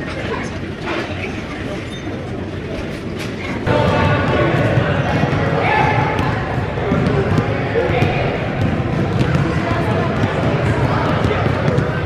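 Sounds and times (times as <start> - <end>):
basketballs bouncing on wooden floor: 3.7 - 12.0.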